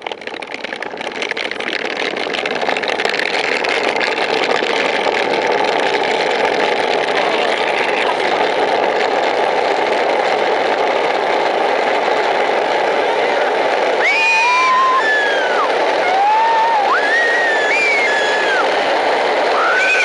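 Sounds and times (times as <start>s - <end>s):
cart wheels rolling on asphalt: 0.0s - 20.0s.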